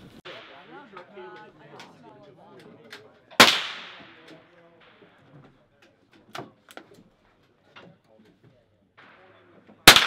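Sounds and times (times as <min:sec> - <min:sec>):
rifle shot with echo: 0:03.4 - 0:05.0, 0:09.0 - 0:10.0.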